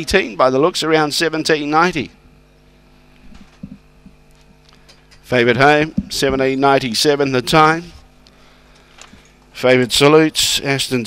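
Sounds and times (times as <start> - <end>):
steady electrical hum: 0.0 - 11.0.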